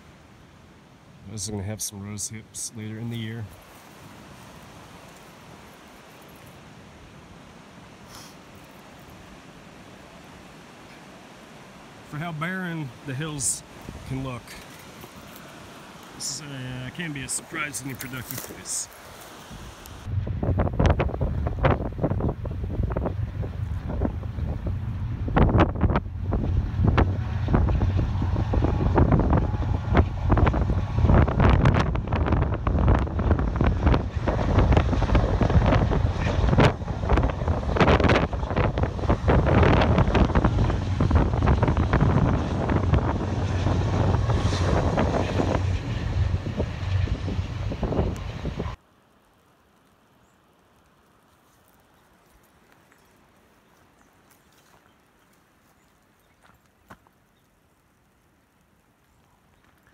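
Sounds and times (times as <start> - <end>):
wind buffeting microphone: 19.5 - 48.8
freight train rumbling on trestle: 20.0 - 48.8.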